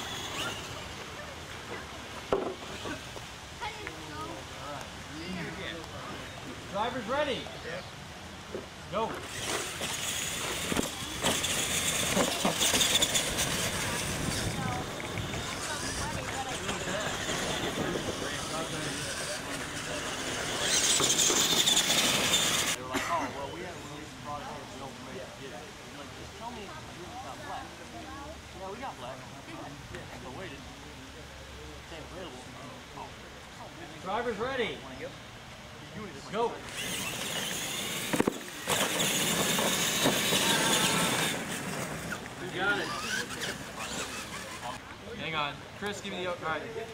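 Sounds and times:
rc truck motors hissing: 0:00.0 - 0:01.9, 0:09.1 - 0:22.8, 0:36.5 - 0:44.8
voices talking: 0:00.0 - 0:46.9.

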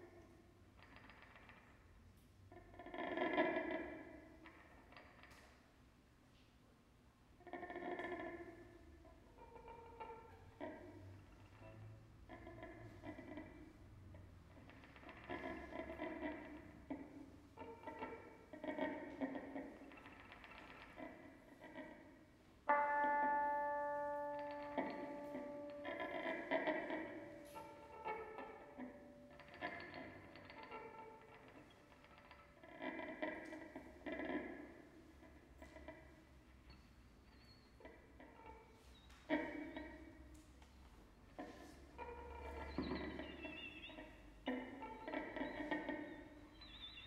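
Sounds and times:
electric guitar playing: 0:22.7 - 0:29.9.

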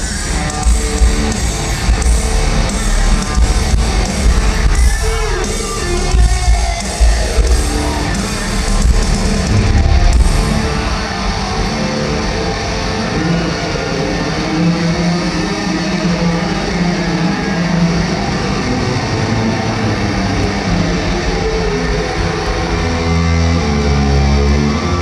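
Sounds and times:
heavy low bass notes: 0:00.0 - 0:25.0
live electric guitar solo: 0:00.0 - 0:25.0.

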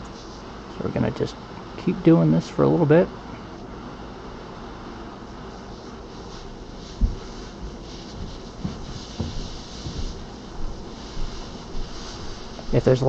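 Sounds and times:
box fan rushing: 0:00.0 - 0:13.0
dull low knocks: 0:07.0 - 0:10.4.

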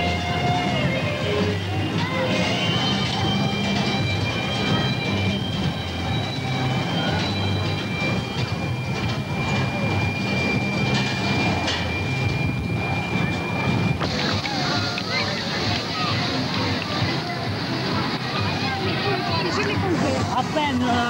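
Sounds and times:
roller coaster rumbling on track: 0:00.0 - 0:21.0.

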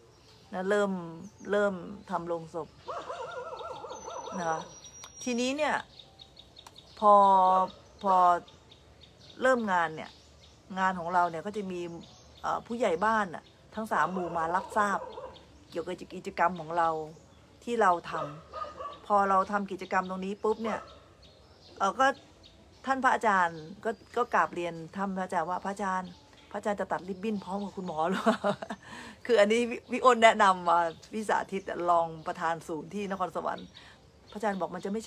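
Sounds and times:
woman speaking: 0:00.5 - 0:02.8, 0:04.2 - 0:05.9, 0:07.0 - 0:08.5, 0:09.4 - 0:10.1, 0:10.7 - 0:15.1, 0:15.8 - 0:18.4, 0:19.1 - 0:20.9, 0:22.9 - 0:35.0.

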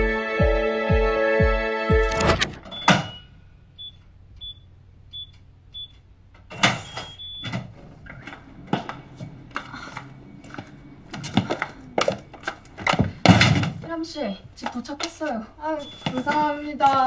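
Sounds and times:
background music: 0:00.0 - 0:02.6
keypad beeps: 0:02.0 - 0:06.0, 0:06.8 - 0:07.6, 0:15.6 - 0:17.0
knocks and clatter: 0:06.3 - 0:14.0.

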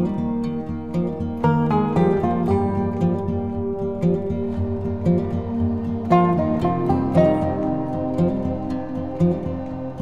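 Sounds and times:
plucked string melody: 0:00.0 - 0:10.0.

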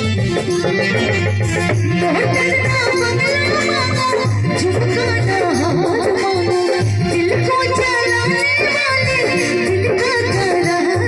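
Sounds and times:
dholak drum beats: 0:00.0 - 0:11.0
electronic keyboard: 0:00.0 - 0:11.0
woman singing into a microphone: 0:00.1 - 0:11.0.

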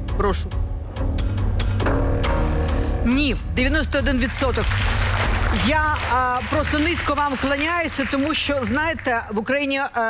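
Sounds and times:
background music with bass pulse: 0:00.0 - 0:08.9.

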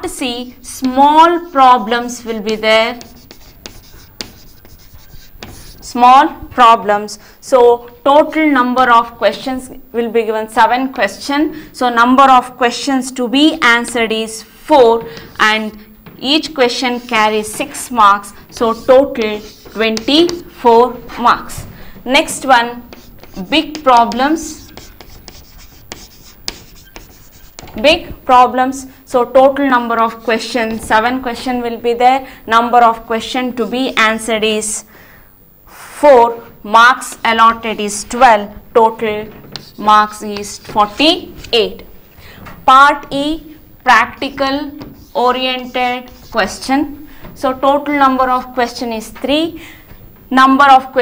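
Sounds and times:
chalk tapping and scraping: 0:00.5 - 0:06.5, 0:14.8 - 0:28.6, 0:37.0 - 0:48.5.

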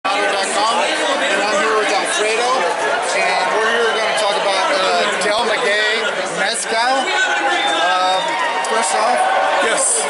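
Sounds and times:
voices chattering: 0:00.0 - 0:10.0
man talking: 0:00.1 - 0:07.0.

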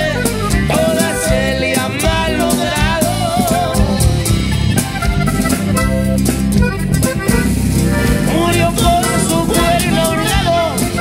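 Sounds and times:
bass: 0:00.0 - 0:11.0
button accordion melody: 0:00.0 - 0:11.0
drum kit: 0:00.0 - 0:11.0
strummed guitars: 0:00.0 - 0:11.0.

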